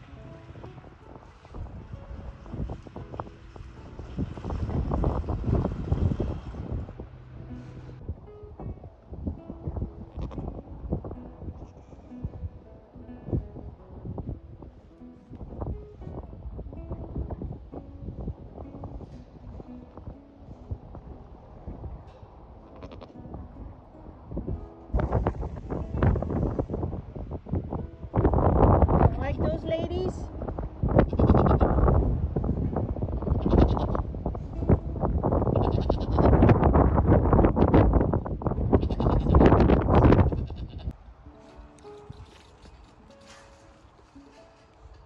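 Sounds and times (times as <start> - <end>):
sheep bleating: 22.7 - 23.2, 35.5 - 36.3, 38.8 - 39.4, 40.3 - 40.9.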